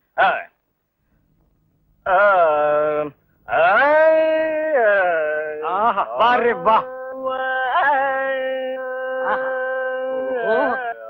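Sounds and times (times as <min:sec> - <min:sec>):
man singing classical vocals: 0:02.0 - 0:11.0.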